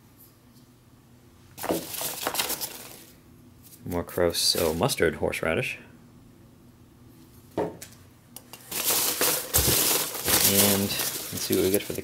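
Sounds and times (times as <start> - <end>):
hands rummaging packing peanuts: 1.6 - 3.1, 8.6 - 12.0.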